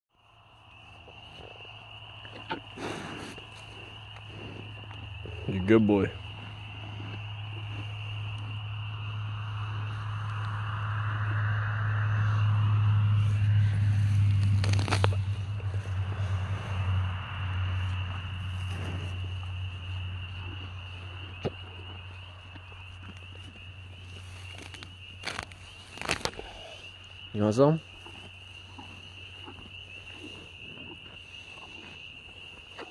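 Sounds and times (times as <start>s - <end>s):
low hum: 0.2s - 27.2s
high insect drone: 0.2s - 32.9s
cow chewing grass: 0.9s - 11.3s, 11.9s - 32.9s
crackling and rustling: 13.2s - 16.8s, 17.8s - 27.0s.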